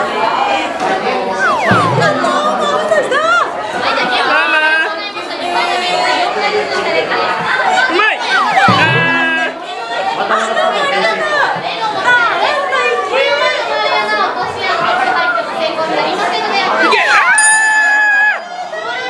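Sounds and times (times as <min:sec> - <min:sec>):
background music: 0:01.4 - 0:03.3
sharp falling-pitch cries: 0:01.4 - 0:03.5
people talking and exclaiming: 0:01.4 - 0:04.1, 0:08.0 - 0:11.4, 0:16.8 - 0:19.0.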